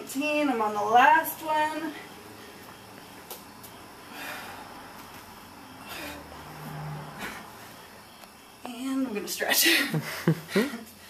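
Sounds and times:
woman breathing hard: 4.0 - 5.0, 5.6 - 7.8.

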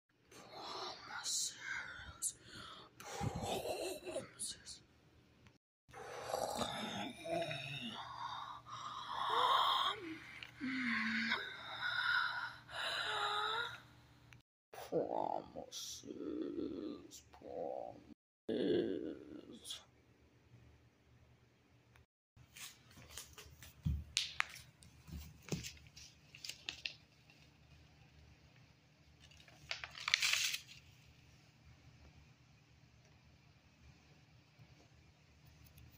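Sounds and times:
person whispering: 0.3 - 4.9, 6.0 - 11.8, 14.8 - 19.9
paper pages handled: 22.5 - 28.1, 29.2 - 31.3.

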